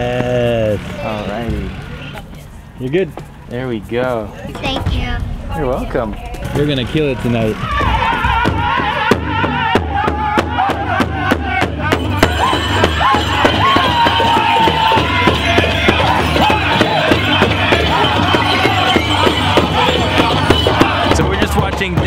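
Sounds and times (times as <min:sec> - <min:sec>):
large drum beating steadily: 0:04.3 - 0:22.0
men singing in high wavering voices: 0:07.5 - 0:22.0.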